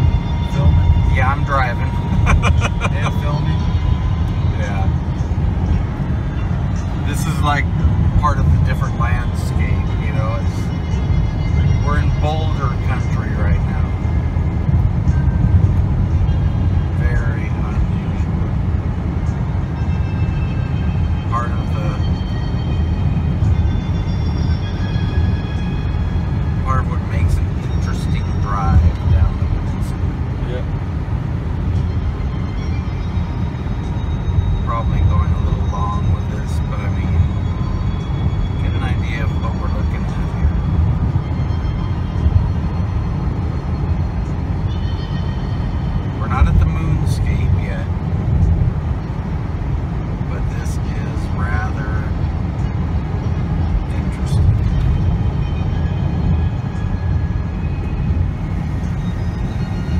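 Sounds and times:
truck driving rumble: 0.0 - 59.9.

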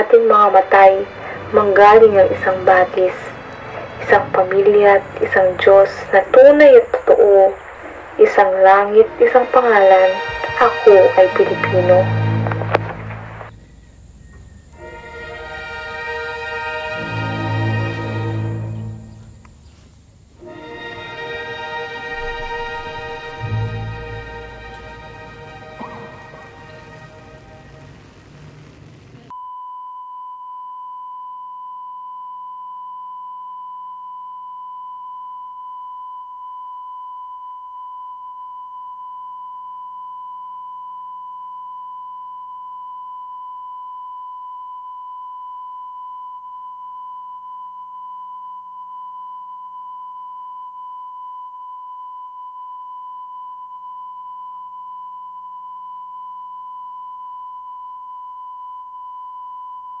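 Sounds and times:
electronic sine test tone: 0.0 - 60.0.

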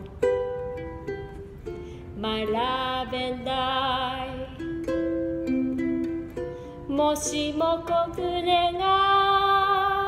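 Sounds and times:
ukulele chord and plucked notes: 0.0 - 10.0.

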